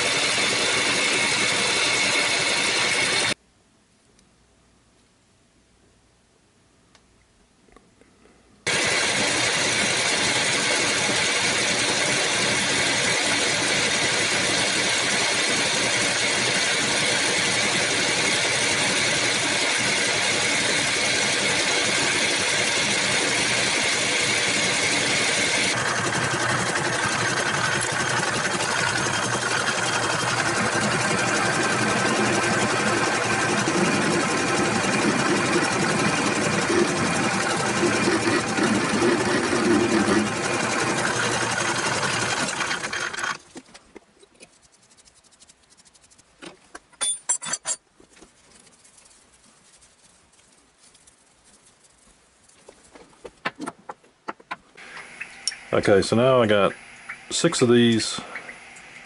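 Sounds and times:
metal lathe humming: 0.0 - 3.4, 8.7 - 43.4
rough uneven cutting noise: 8.7 - 43.6.

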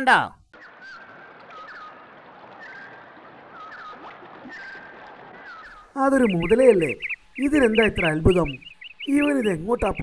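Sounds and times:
outdoor ambience hiss: 0.0 - 10.0
birds chirping: 0.4 - 10.0.

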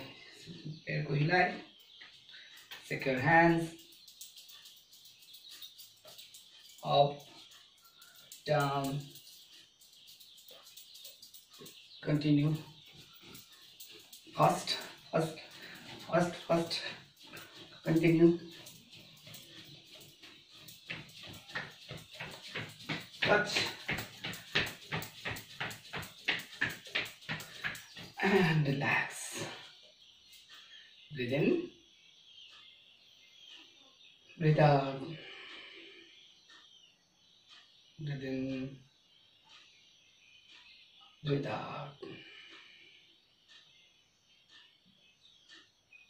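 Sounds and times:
faint high chirping: 0.0 - 28.8.

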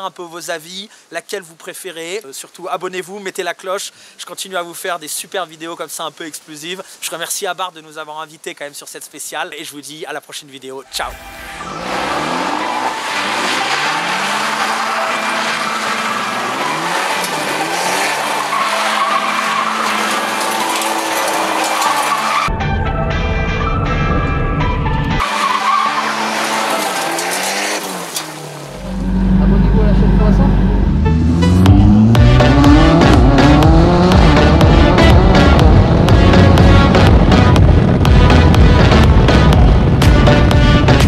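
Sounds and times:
background music: 10.9 - 27.8, 29.0 - 41.0
car engine revving: 11.0 - 22.5, 25.2 - 41.0
tyres skidding on gravel: 11.0 - 22.5, 25.2 - 30.0.

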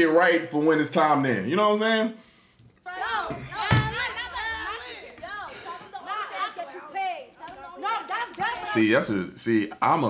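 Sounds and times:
voices talking: 2.8 - 10.0.

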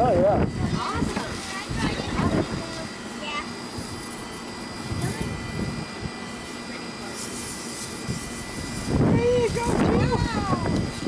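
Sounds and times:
faint voices: 0.0 - 4.1, 6.3 - 11.0.

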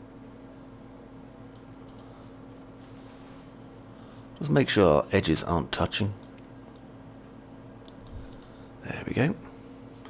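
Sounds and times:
low steady hum: 0.0 - 10.0
computer mouse clicks: 1.5 - 3.0, 6.2 - 6.9, 7.8 - 8.6.

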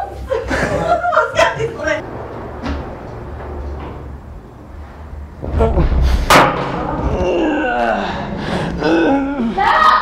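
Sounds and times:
people chuckling: 0.0 - 1.8.

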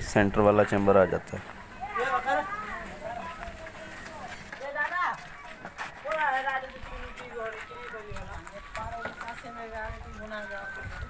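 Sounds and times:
distant voices calling out: 0.0 - 11.0.

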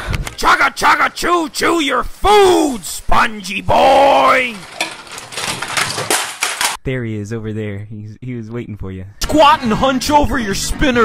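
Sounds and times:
toy train clattering on track: 4.3 - 6.8.

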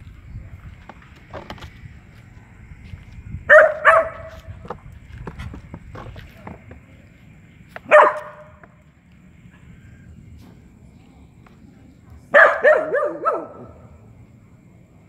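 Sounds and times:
dog barking: 3.5 - 4.5, 7.9 - 8.6, 12.3 - 13.9.

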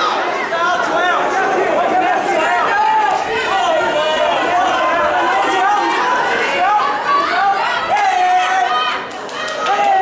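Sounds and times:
crowd shouting: 0.0 - 10.0.

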